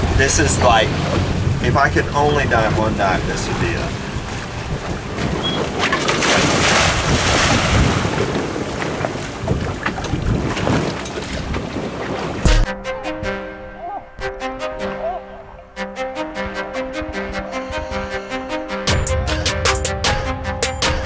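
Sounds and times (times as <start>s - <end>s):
wind buffeting microphone: 0.0s - 13.4s
water along boat hull: 0.0s - 18.7s
background music with held notes: 0.2s - 6.2s, 12.5s - 21.0s.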